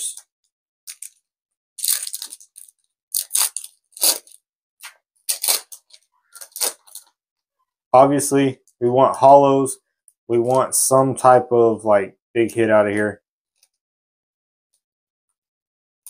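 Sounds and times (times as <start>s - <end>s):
foil wrapper crinkling and tearing: 0.9s - 1.2s, 1.8s - 4.4s, 5.3s - 7.1s.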